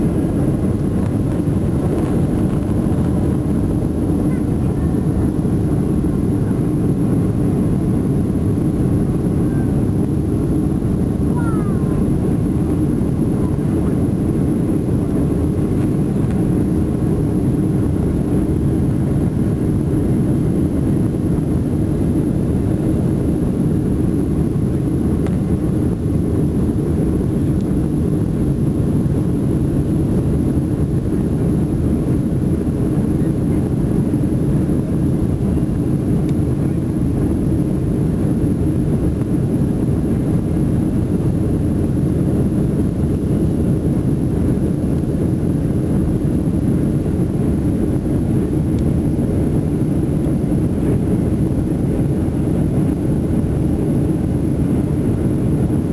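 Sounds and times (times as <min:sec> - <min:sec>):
jet engines roaring in cabin: 0:00.0 - 0:55.9.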